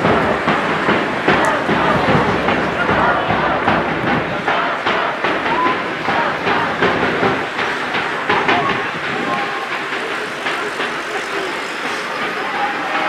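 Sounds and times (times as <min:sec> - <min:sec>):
sharp knocks: 0:00.0 - 0:12.5
players shouting: 0:00.0 - 0:13.0.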